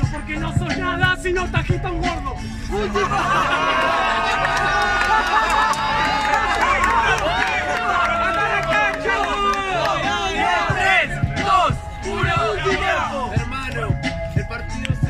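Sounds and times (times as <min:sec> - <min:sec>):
hip-hop beat: 0:00.0 - 0:15.0
crowd shouting and yelling: 0:02.7 - 0:14.1.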